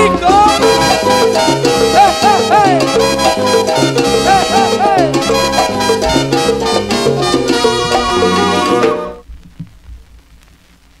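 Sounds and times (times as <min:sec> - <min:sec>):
salsa band with percussion: 0:00.0 - 0:09.3
faint record noise: 0:00.0 - 0:11.0.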